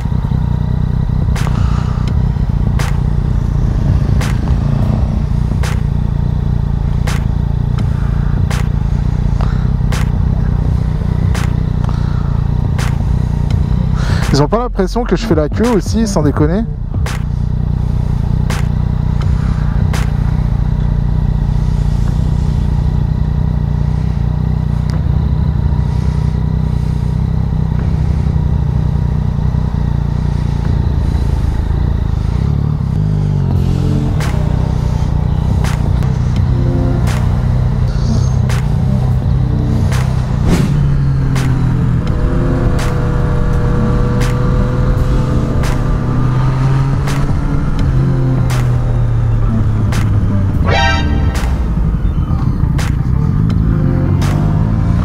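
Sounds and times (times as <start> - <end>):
motorcycle engine idling: 0.0 - 55.0
sharp clicks: 2.8 - 3.4, 4.2 - 6.1, 7.0 - 8.8, 11.3 - 12.0, 12.7 - 13.2
higher pitched sounds: 33.6 - 54.3.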